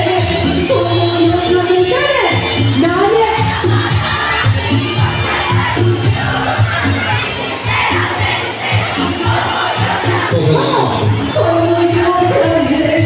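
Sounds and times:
crowd shouting and cheering: 0.0s - 13.0s
loudspeaker music with bass beat: 0.0s - 13.0s.

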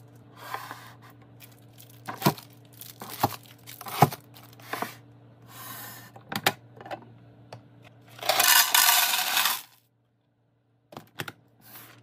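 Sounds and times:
dry pasta rattling into plastic: 1.4s - 4.6s, 8.1s - 9.8s.

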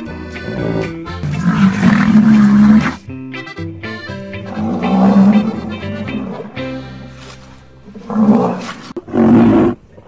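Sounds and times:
background music: 0.0s - 8.9s
rhinoceros call: 4.4s - 6.5s.

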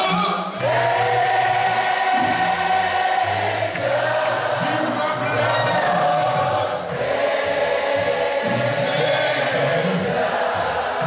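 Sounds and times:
lower voices singing: 0.0s - 11.0s.

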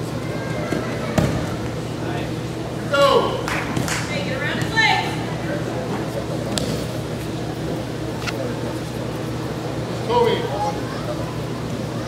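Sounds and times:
spectators' voices in hall: 0.0s - 12.0s.

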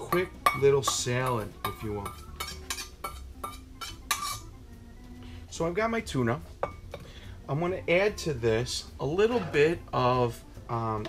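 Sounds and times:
metal utensil scraping bowl: 0.0s - 4.5s.

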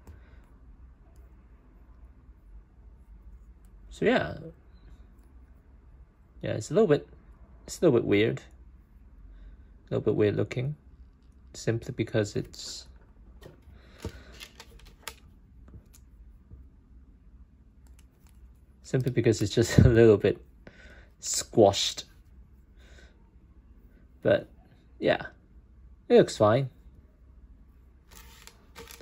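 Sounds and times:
light plastic rustle: 13.4s - 16.4s, 28.1s - 29.0s.

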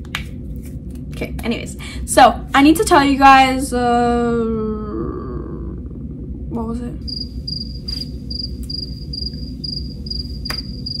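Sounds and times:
steady low hum: 0.0s - 11.0s
insect chirping: 7.1s - 11.0s.

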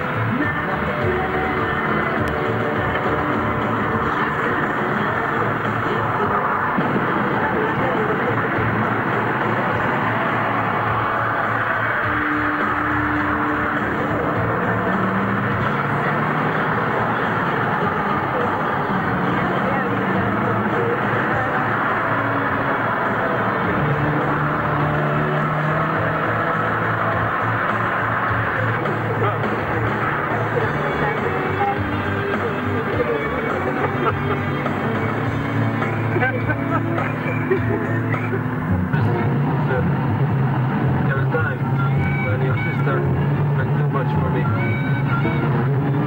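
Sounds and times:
film music with long held notes: 0.0s - 46.0s
steady rushing noise: 0.0s - 46.0s.

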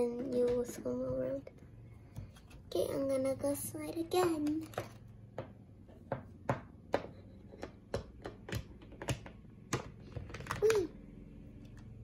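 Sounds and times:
plastic toy clicking and tapping: 6.9s - 10.9s.

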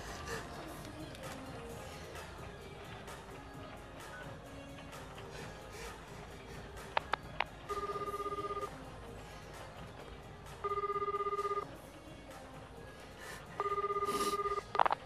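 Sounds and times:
telephone ringback tone: 7.7s - 8.8s, 10.6s - 11.7s, 13.6s - 15.0s.

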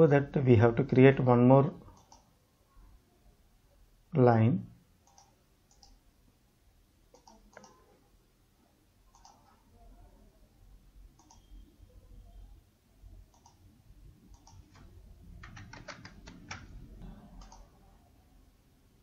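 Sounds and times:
faint computer mouse clicks: 1.9s - 2.3s, 5.0s - 6.0s, 7.1s - 7.8s, 9.1s - 9.6s, 11.2s - 11.5s, 13.3s - 13.6s, 14.3s - 16.7s, 17.4s - 17.7s.

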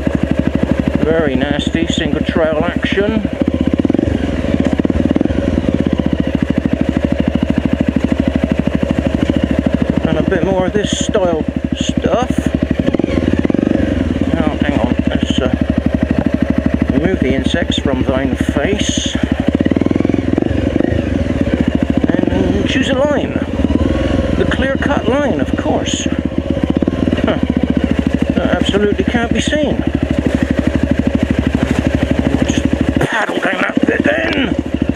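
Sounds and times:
motorcycle engine at low revs: 0.0s - 34.9s.

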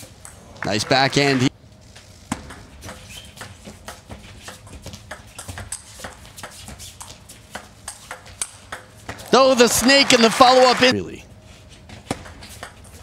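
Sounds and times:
table tennis ball rally: 7.5s - 11.1s.

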